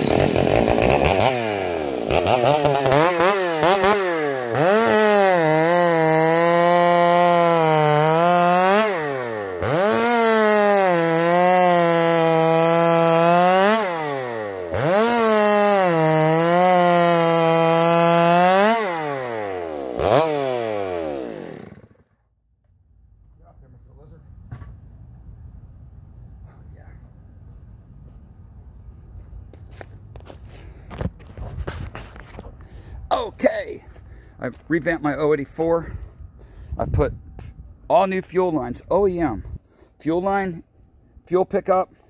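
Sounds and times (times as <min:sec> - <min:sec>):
chainsaw cutting log: 0:00.0 - 0:22.2.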